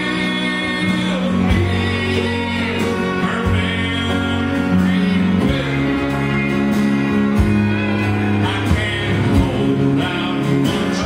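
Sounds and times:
live country band playing: 0.0s - 11.0s.

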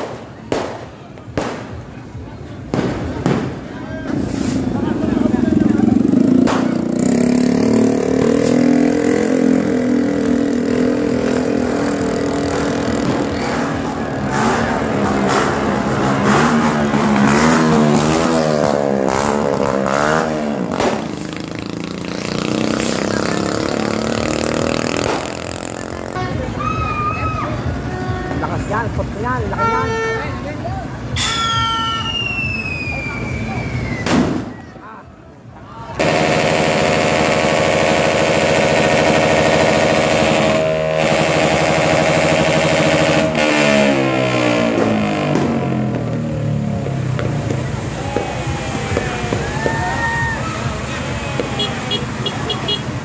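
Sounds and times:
firecrackers banging: 0.0s - 26.4s, 33.7s - 34.7s, 35.9s - 53.0s.

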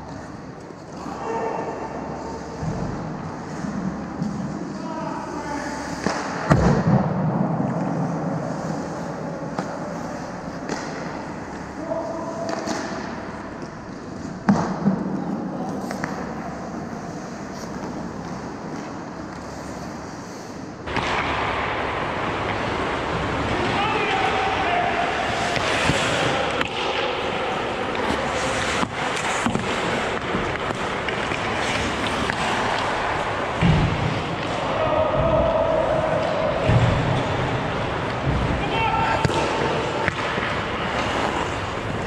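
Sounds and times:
hockey sticks and puck clacking: 5.7s - 7.0s, 7.6s - 42.0s
skates scraping ice: 7.6s - 15.1s, 15.7s - 42.0s
players calling out: 22.5s - 42.0s.

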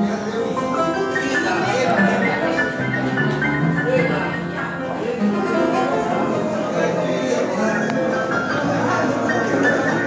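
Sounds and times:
upright piano playing: 0.0s - 10.0s.

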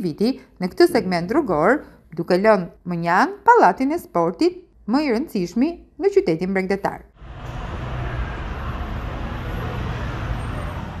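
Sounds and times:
street traffic noise: 7.1s - 11.0s
low engine rumble: 7.2s - 11.0s.

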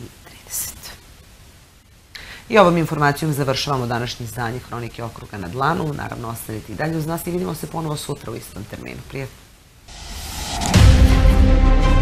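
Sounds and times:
short breathy hiss: 2.0s - 2.5s.

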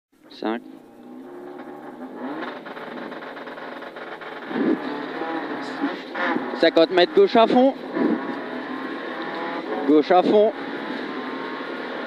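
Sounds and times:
tyre and road noise: 0.2s - 12.0s
car engine running hard: 0.3s - 12.0s.

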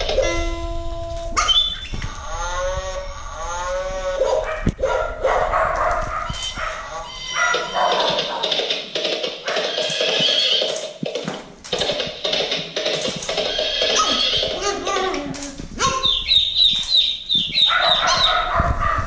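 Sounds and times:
mixed electronic tones: 0.0s - 4.3s, 6.3s - 8.6s
electronic dog-like calls: 1.3s - 10.8s, 11.8s - 19.0s.

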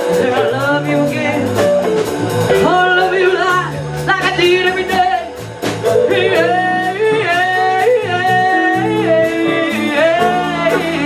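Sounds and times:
woman singing: 0.0s - 1.7s, 2.6s - 5.4s, 6.0s - 11.0s
blues band playing: 0.0s - 11.0s.

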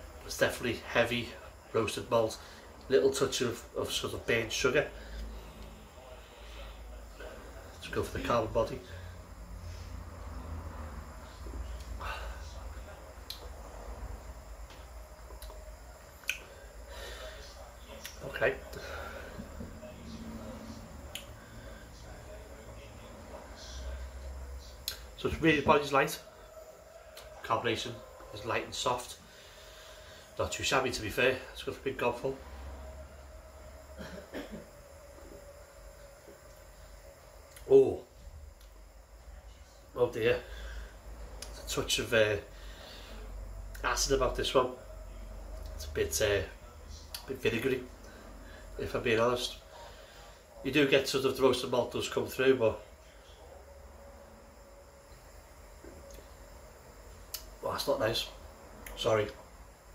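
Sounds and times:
low steady hum: 0.0s - 59.9s
mouth clicks: 16.2s - 16.5s.

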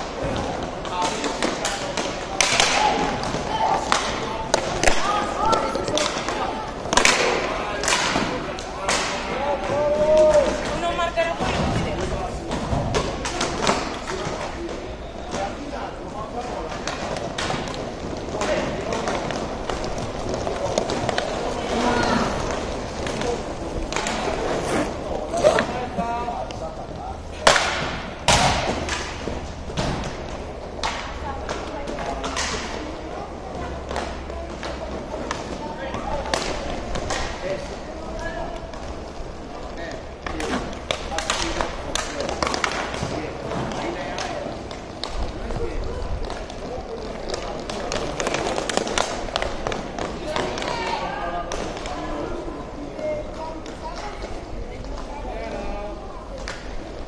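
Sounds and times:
hockey sticks and puck clacking: 0.0s - 57.0s
murmur of voices: 0.0s - 57.0s.

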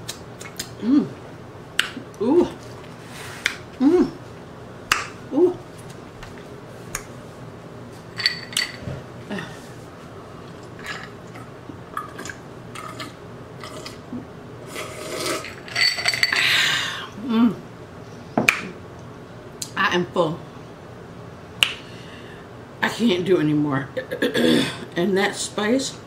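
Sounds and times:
ice cubes clinking in glass: 8.2s - 8.8s, 15.4s - 16.4s.

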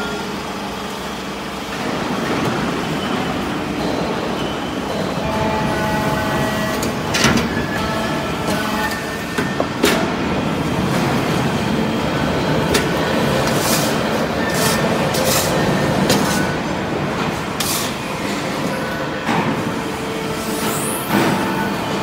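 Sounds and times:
hydraulic press humming: 0.0s - 22.0s.

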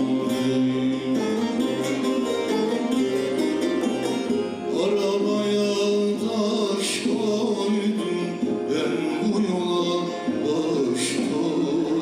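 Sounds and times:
folk ensemble with plucked lutes: 0.0s - 12.0s.

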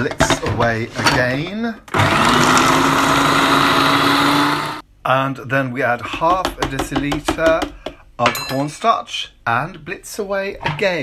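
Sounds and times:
food processor motor humming: 1.9s - 4.8s.

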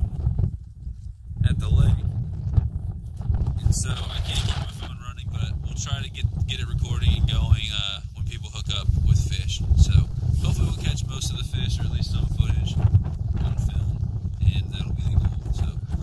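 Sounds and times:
gusty wind on microphone: 0.0s - 16.0s.

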